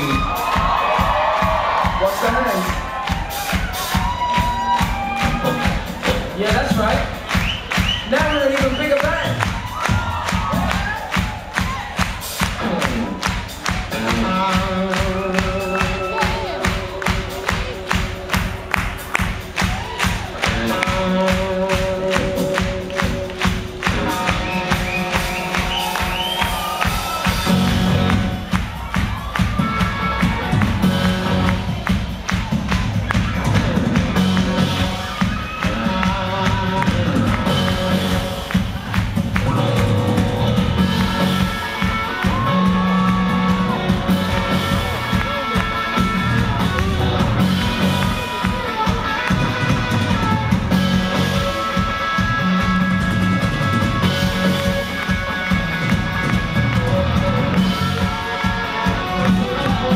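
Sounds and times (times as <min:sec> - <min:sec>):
keyboards: 0:00.0 - 0:59.9
steady drum beat: 0:00.0 - 0:59.9
electric guitar: 0:09.2 - 0:59.9.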